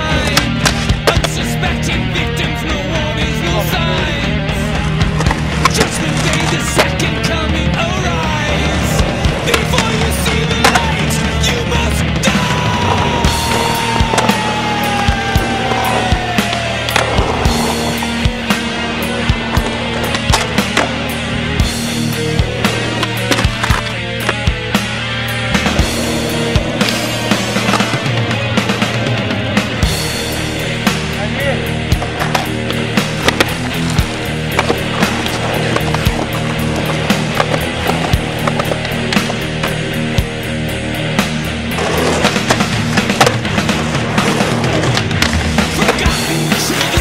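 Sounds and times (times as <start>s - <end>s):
music soundtrack: 0.0s - 47.0s
skateboard wheels rolling on concrete: 0.0s - 47.0s
skateboard clacks and knocks: 8.4s - 11.1s, 22.6s - 24.4s, 41.8s - 47.0s.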